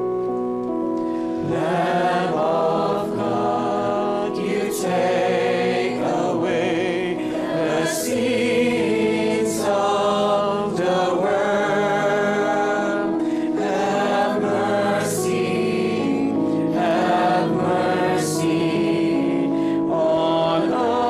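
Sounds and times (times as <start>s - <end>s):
church choir singing a hymn: 1.1s - 21.0s.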